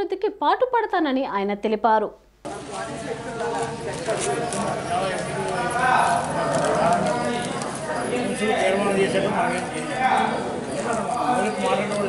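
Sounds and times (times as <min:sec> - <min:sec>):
voices talking: 0:02.4 - 0:12.0.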